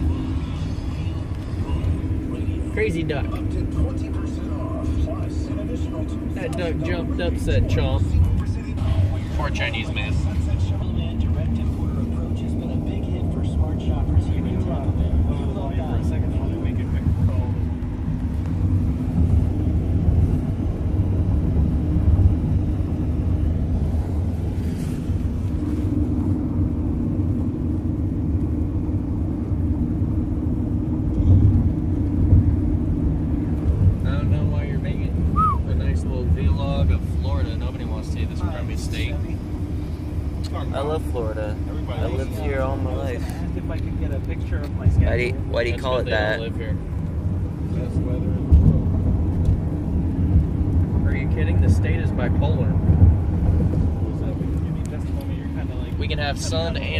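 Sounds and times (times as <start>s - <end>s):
car road and engine rumble: 0.0s - 56.9s.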